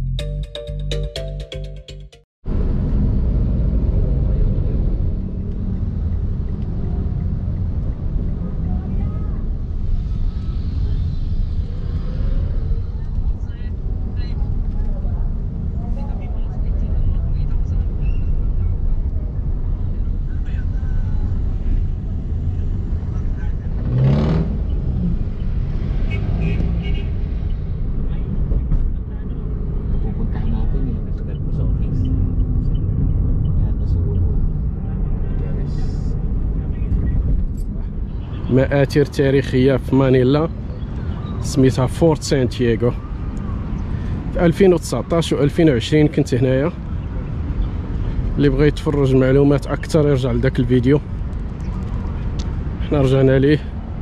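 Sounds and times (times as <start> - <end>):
vehicle interior rumble: 2.5 - 38.8
voice: 38.5 - 40.5, 48.4 - 51.0, 52.8 - 53.7.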